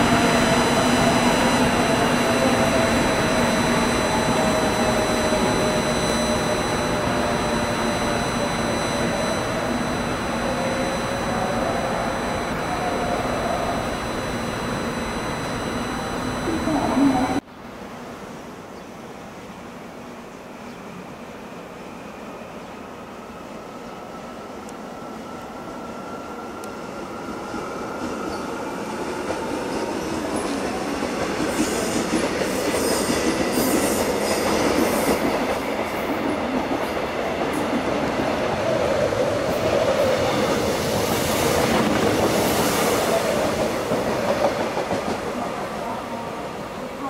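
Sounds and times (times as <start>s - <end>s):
electric train passing: 0.0s - 47.0s.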